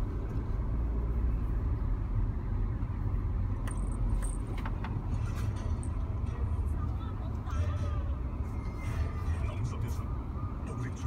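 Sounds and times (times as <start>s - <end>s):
car engine and tyres rumbling: 0.0s - 11.0s.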